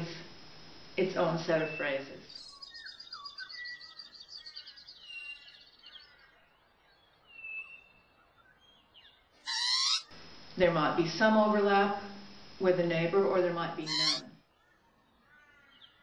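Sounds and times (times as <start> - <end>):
clear bird whistles: 9.5 - 10.1, 13.9 - 14.2
fluting whistled bird notes: 9.5 - 10.1, 13.9 - 14.2
high chattering bird trill: 9.5 - 10.1, 13.9 - 14.2
short loud bird call: 9.5 - 10.1, 13.9 - 14.2.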